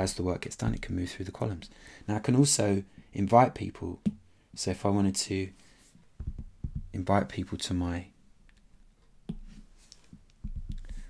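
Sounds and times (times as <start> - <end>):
dull low taps: 6.2 - 7.1, 10.4 - 10.9.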